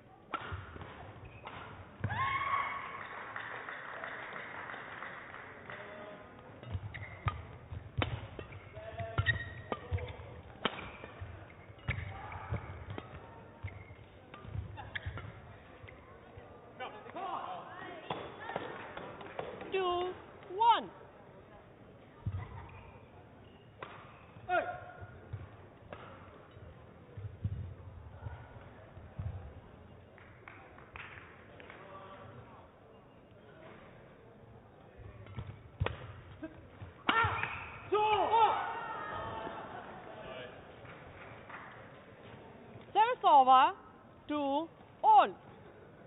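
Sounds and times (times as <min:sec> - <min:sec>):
racket hitting shuttlecock: 0:00.3 - 0:02.2, 0:06.6 - 0:16.0, 0:23.8 - 0:24.6, 0:25.3 - 0:26.3, 0:35.2 - 0:36.2
shoes squeaking on court floor: 0:00.7 - 0:02.0, 0:06.4 - 0:16.2, 0:22.0 - 0:24.5.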